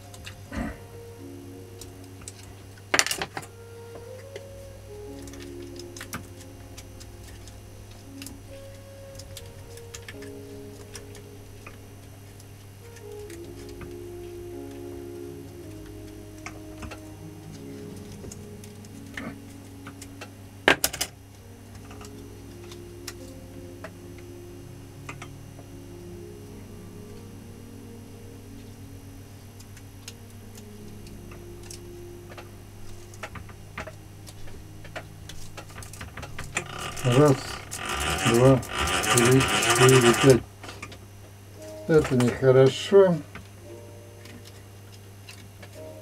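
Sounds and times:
electrical hum: 0.0 - 46.0
quiet background music: 0.0 - 46.0
light clicks of winding wire: 34.8 - 40.9.

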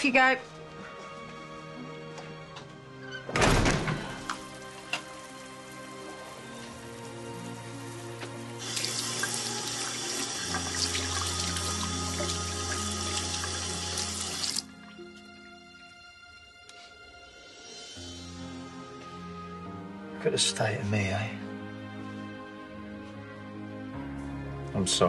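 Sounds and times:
tap running into washbasin: 8.6 - 14.6.

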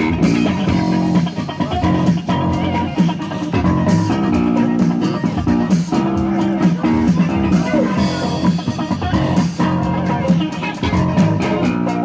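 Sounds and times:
bass guitar: 0.0 - 12.0
electric guitar: 0.0 - 12.0
live pop band playing: 0.0 - 12.0.

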